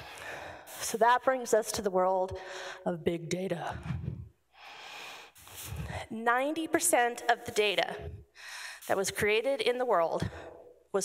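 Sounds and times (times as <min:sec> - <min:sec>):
person breathing into microphone: 0:00.0 - 0:00.9, 0:03.8 - 0:06.1.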